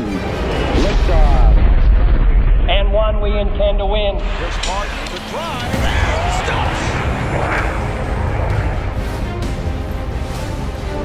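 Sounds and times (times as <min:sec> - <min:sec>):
rocket launch rumble: 0:00.2 - 0:09.2.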